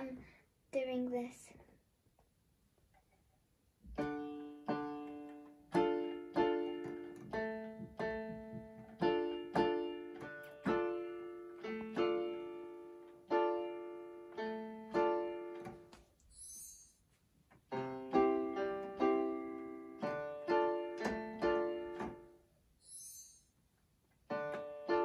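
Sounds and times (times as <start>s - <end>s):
electronic keyboard piano chords: 3.9s - 16.6s, 17.7s - 23.1s, 24.3s - 25.0s.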